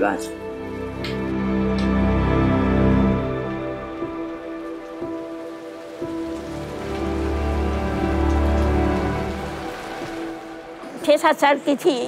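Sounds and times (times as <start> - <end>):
music of sustained notes: 0.0 - 12.0
steady rain falling: 0.2 - 12.0.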